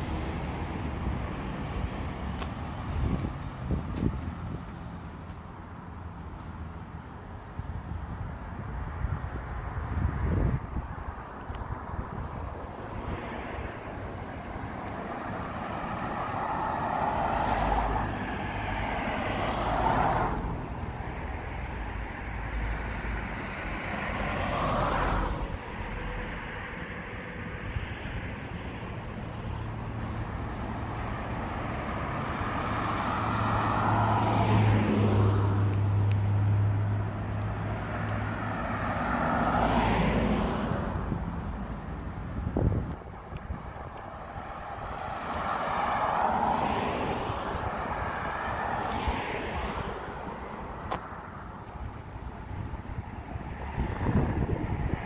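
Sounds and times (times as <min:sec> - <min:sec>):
cars passing by: 0:00.0 - 0:55.0.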